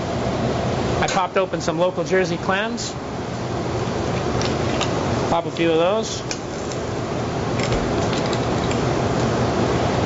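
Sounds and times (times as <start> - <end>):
kitchen ventilation hiss: 0.0 - 10.0.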